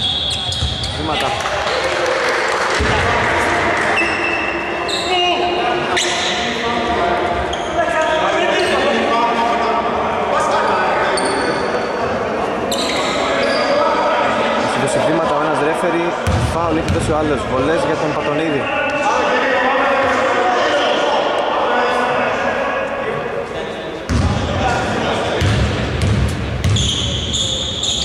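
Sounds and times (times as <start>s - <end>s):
people's voices echoing: 0.0s - 28.0s
basketball bouncing: 25.4s - 26.9s
short high squeaks: 26.8s - 28.0s.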